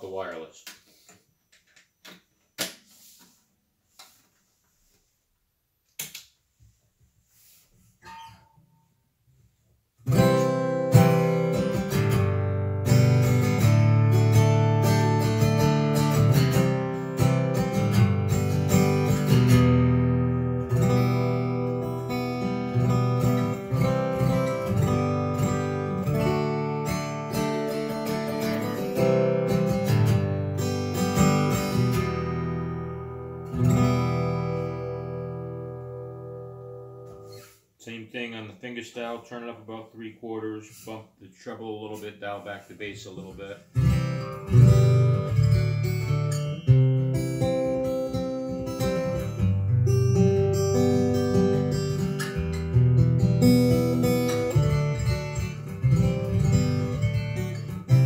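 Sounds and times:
acoustic guitar fingerstyle: 0:10.0 - 0:37.6, 0:43.2 - 0:58.0.

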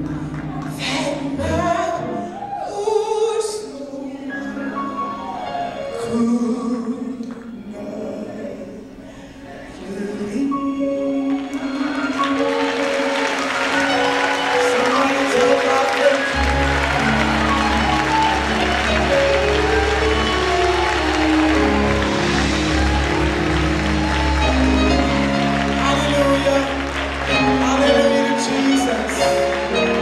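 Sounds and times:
applause and clapping: 0:00.0 - 0:01.3, 0:11.5 - 0:30.0
gospel band chords: 0:00.0 - 0:30.0.

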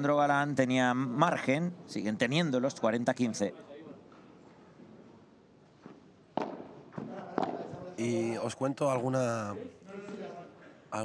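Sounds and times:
padel ball knocks: 0:06.4 - 0:07.8.

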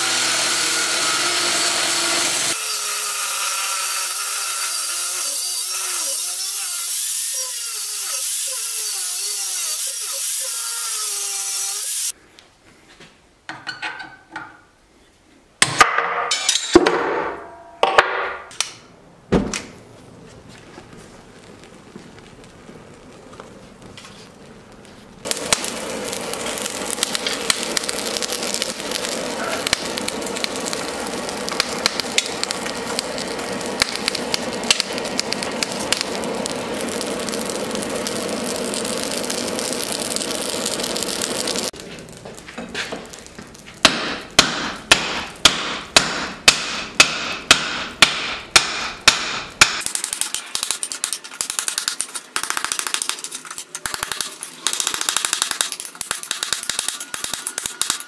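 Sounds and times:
forge fire rushing and crackling: 0:20.0 - 0:45.8, 0:49.6 - 0:58.0.

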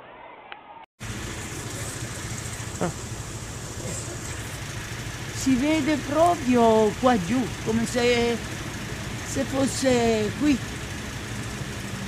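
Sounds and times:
road traffic noise: 0:01.0 - 0:12.0.

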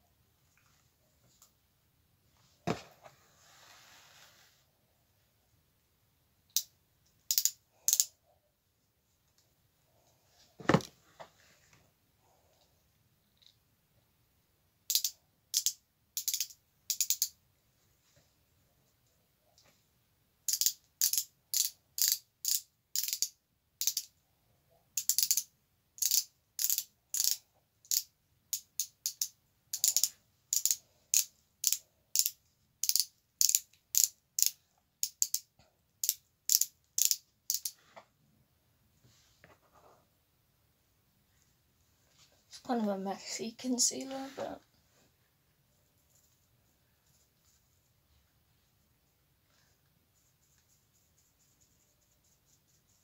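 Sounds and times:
ratchet clicking: 0:26.0 - 0:35.4, 0:36.0 - 0:37.7.

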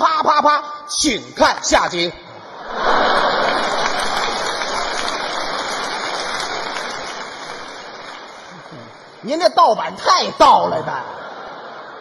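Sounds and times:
audience applauding: 0:02.7 - 0:09.2.

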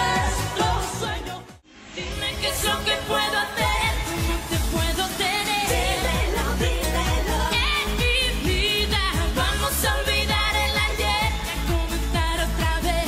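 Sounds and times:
dance-pop backing track: 0:00.0 - 0:13.0
woman singing lead: 0:00.0 - 0:13.0
steady kick-drum beat: 0:03.6 - 0:13.0.

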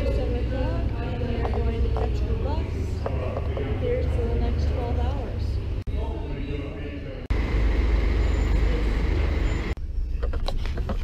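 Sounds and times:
coach engine rumble: 0:00.0 - 0:11.0.

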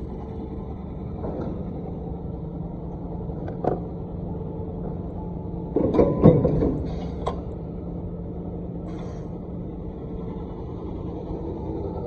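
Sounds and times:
factory machinery humming: 0:00.0 - 0:12.0.

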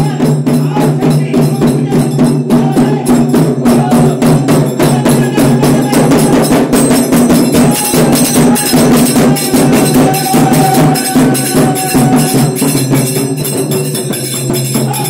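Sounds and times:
hand drum beaten rapidly: 0:00.0 - 0:15.0
small hand cymbals clashing: 0:01.0 - 0:15.0.

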